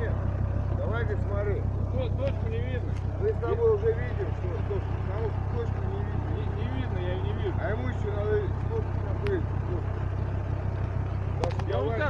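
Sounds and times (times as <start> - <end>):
engine idling: 0.0 - 12.0
indistinct voices talking: 0.0 - 12.0.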